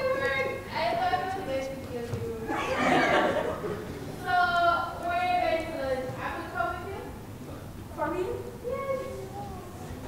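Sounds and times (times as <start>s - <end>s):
voices in a large hall: 0.0s - 10.0s.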